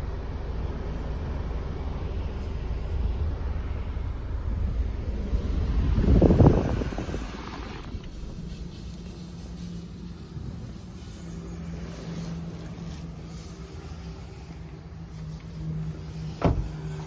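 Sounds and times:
low hum in a car: 0.0 - 17.0
sharp thump: 16.4 - 16.8.

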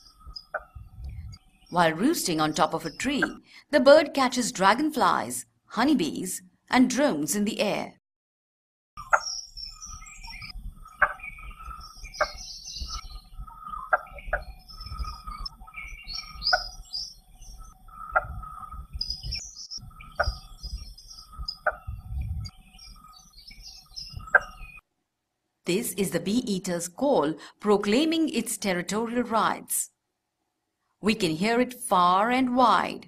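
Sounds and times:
insects: 0.0 - 0.8, 9.0 - 24.8
small birds chirping: 0.0 - 3.6, 9.0 - 24.8
bird harsh knocking call: 9.0 - 9.4, 10.9 - 15.4, 16.1 - 16.8, 18.0 - 22.0, 24.0 - 24.8.

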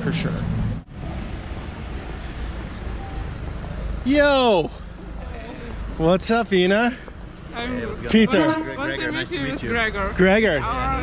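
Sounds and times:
city car traffic: 0.0 - 11.0.

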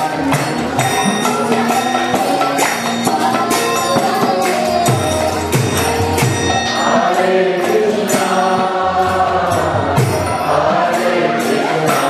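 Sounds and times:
light percussion: 0.0 - 12.0
voices chanting on held notes: 6.4 - 12.0.

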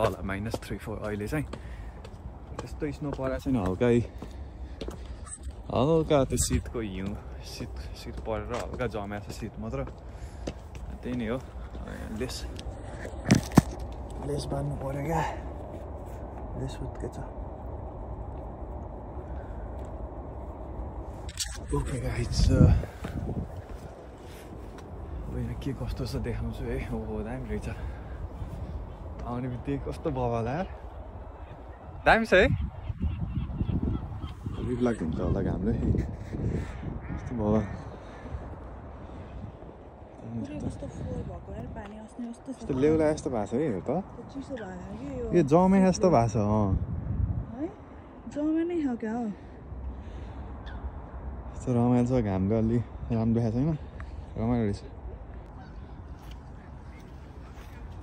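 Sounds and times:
steady low rumble: 0.0 - 58.0.

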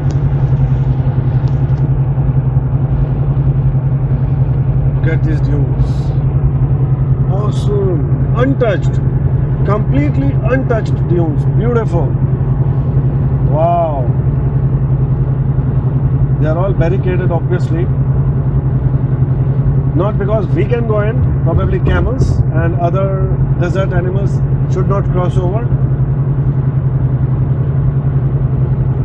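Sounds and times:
in-cabin car drone: 0.0 - 29.0.

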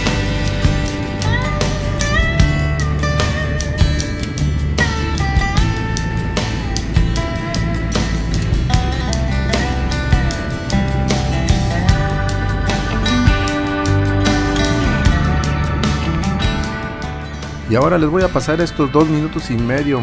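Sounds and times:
guitar with sliding notes: 0.0 - 20.0.

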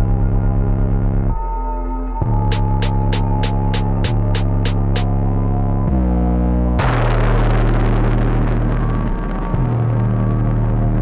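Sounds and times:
synth and bass song: 0.0 - 11.0
explosion sound effect: 6.8 - 11.0.

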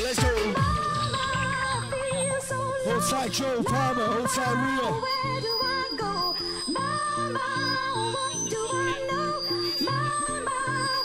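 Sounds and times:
hardcore dance music: 0.0 - 5.4
high wavering vocal melody: 0.0 - 11.0.

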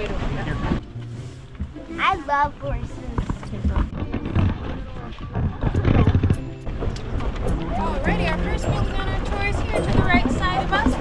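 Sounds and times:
horse hooves clip-clopping: 0.0 - 11.0
wagon knocks and rattles: 1.6 - 11.0.

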